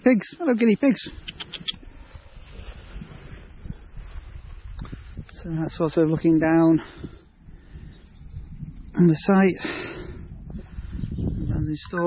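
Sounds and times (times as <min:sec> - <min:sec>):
low rumbling wind: 0:00.0 - 0:12.0
small bird chirping: 0:00.8 - 0:01.9, 0:07.8 - 0:09.2
microphone handling noise: 0:01.2 - 0:05.5.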